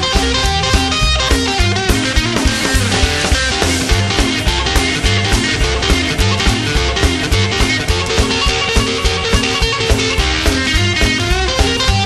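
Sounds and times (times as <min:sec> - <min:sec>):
drums and bass beat: 0:00.0 - 0:12.0
rock and roll guitar lead: 0:00.0 - 0:12.0.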